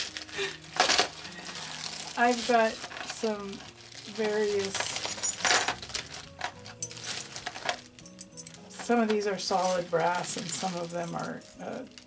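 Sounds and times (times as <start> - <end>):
plastic bag rustling: 0.0 - 12.0
small metal pieces clinking: 1.9 - 12.0.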